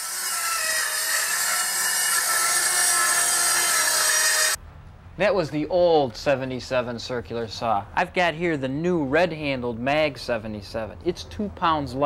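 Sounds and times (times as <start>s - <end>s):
circular saw cutting wood: 0.0s - 4.6s.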